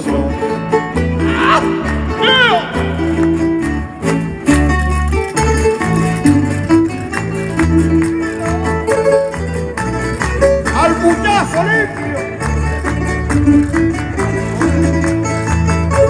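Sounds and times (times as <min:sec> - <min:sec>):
bass notes: 0:00.0 - 0:16.0
plucked string instruments: 0:00.0 - 0:16.0
strummed acoustic guitars: 0:00.0 - 0:16.0.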